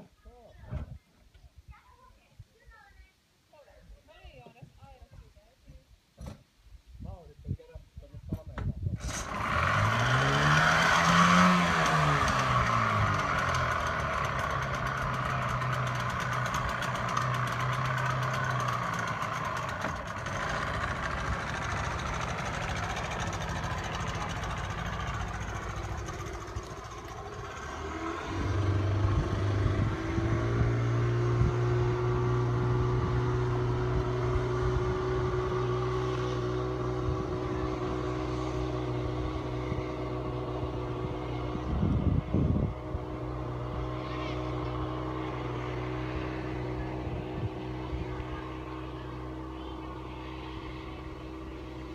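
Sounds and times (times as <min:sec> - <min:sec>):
rough thump: 0:06.2 - 0:06.5
outboard motor running: 0:09.0 - 0:51.9.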